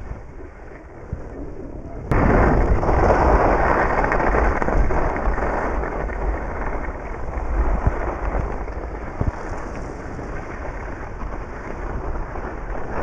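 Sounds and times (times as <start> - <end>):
wind rumbling on microphone: 0.0 - 13.0
skis scraping on packed snow: 2.8 - 13.0.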